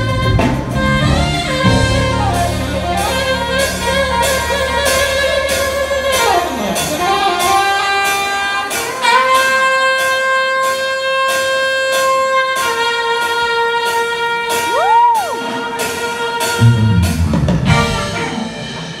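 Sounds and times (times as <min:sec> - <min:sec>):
solo saxophone in reverberant hall: 0:00.0 - 0:19.0.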